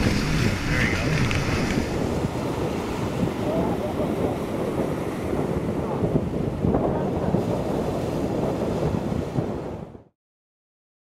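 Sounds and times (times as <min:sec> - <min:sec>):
choppy sea: 0:00.0 - 0:10.2
wind buffeting microphone: 0:00.0 - 0:10.2.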